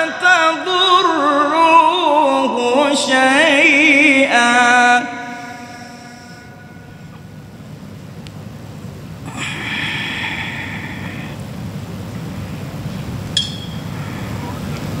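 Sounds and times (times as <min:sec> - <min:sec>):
sung note echoing in hall: 0:00.0 - 0:07.7
low room rumble: 0:00.0 - 0:15.0
breathy intake of breath: 0:05.2 - 0:07.2, 0:09.2 - 0:11.4, 0:13.9 - 0:14.7.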